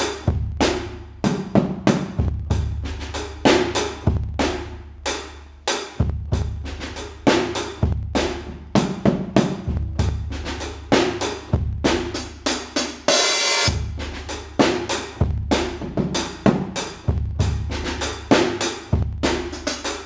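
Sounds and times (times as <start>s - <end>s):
drum kit slow groove: 0.0s - 20.0s
cymbal crash: 13.1s - 13.9s.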